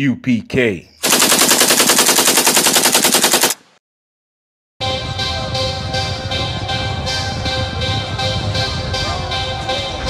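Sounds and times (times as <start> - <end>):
rapid rattle of sharp hits: 1.0 - 3.6
music: 4.8 - 10.0.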